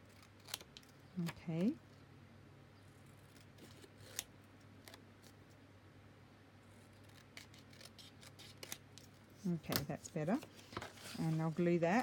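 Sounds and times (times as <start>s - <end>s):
low steady hum: 0.0s - 12.0s
scissors snipping paper: 7.0s - 8.8s.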